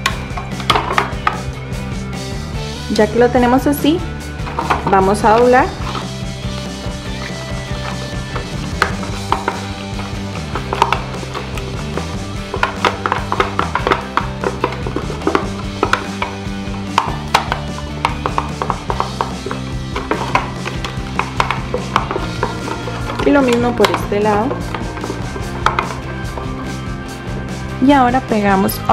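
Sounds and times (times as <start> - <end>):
background music with bass: 0.0 - 28.9.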